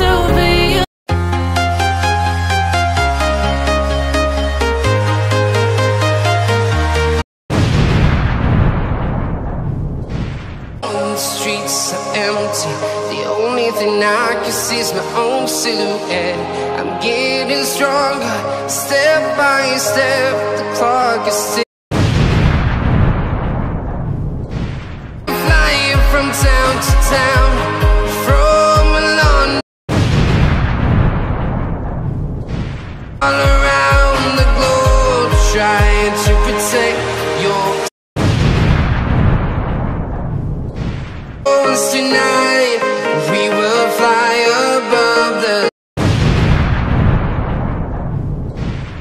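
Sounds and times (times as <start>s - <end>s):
explosion blast: 7.5s - 11.0s, 21.9s - 26.7s, 29.9s - 34.2s, 38.2s - 41.5s, 46.0s - 49.0s
low rumble: 46.4s - 49.0s.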